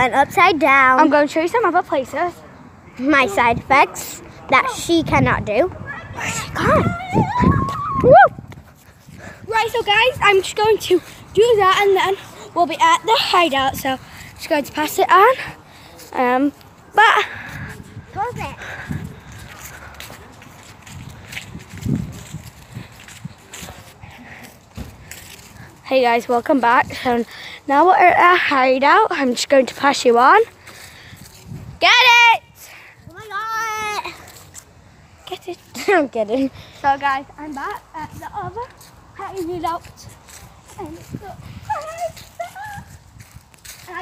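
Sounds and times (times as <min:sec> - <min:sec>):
girl exclaiming: 0:05.8 - 0:08.3, 0:31.8 - 0:34.2, 0:40.8 - 0:43.0.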